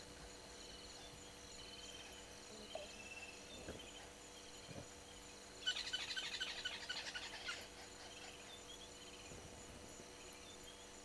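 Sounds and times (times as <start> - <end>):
insects buzzing: 0.0 - 11.0.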